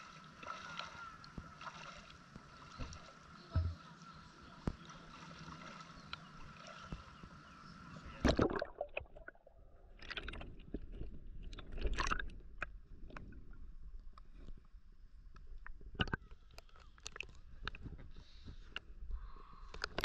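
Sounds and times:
water lapping: 0.0 - 9.0.

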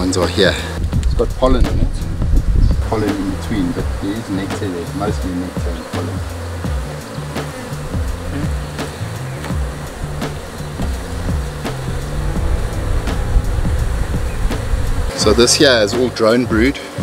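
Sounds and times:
background music: 0.0 - 17.0
bees buzzing: 2.3 - 17.0.

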